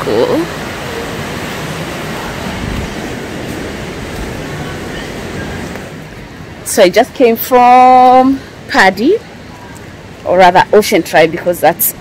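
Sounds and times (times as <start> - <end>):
steady rushing outdoor noise: 0.0 - 12.0.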